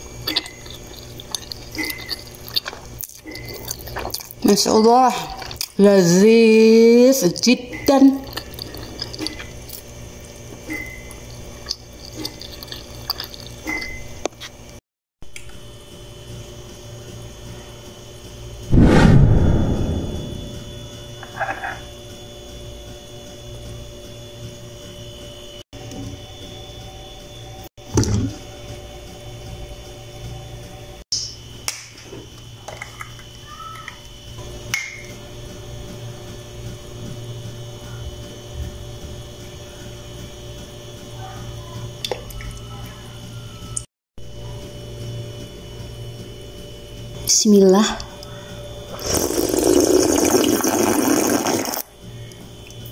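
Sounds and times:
steady low hum: 0:17.5 - 0:21.3
heavy low thump: 0:18.7 - 0:20.8.

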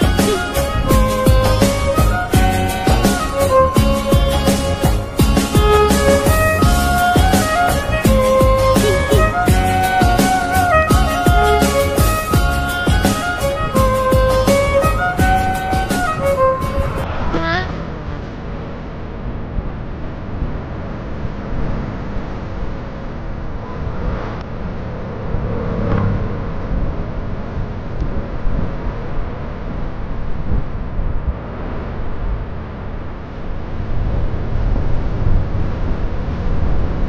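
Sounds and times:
vehicle engine and road noise: 0:00.0 - 0:37.0.

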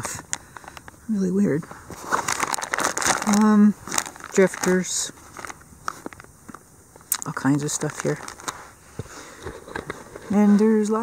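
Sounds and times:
plastic packages rustling: 0:00.0 - 0:11.0.

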